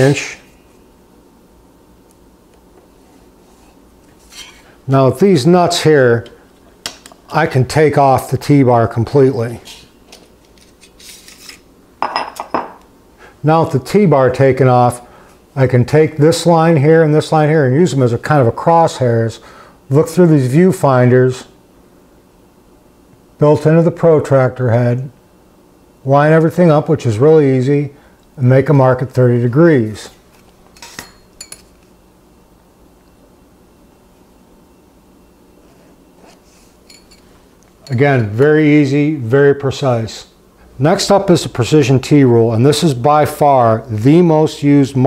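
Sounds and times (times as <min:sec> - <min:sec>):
metal bar scraping: 0:04.2 - 0:04.7
metal tools clinking: 0:30.8 - 0:31.8, 0:36.8 - 0:38.3.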